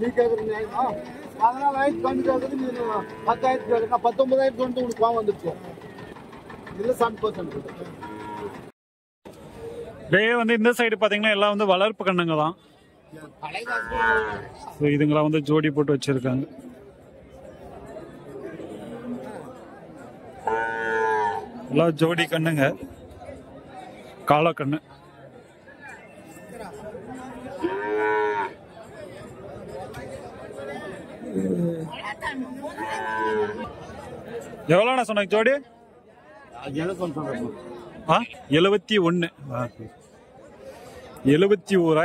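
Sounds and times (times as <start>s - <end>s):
men talking: 0.0s - 5.9s, 6.7s - 8.0s, 9.9s - 16.8s, 21.6s - 25.3s, 28.9s - 35.7s, 36.4s - 42.0s
crowd murmur: 0.0s - 8.7s, 9.3s - 10.4s, 12.6s - 42.0s
cow mooing: 2.8s - 3.9s, 8.0s - 8.6s, 13.8s - 14.6s, 20.5s - 21.6s, 27.6s - 28.6s, 32.7s - 33.6s.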